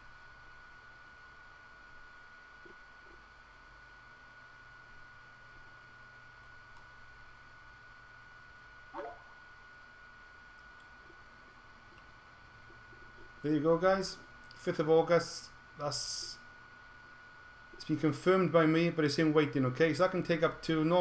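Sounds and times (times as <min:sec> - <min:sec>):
low hum: 0:00.0 - 0:20.6.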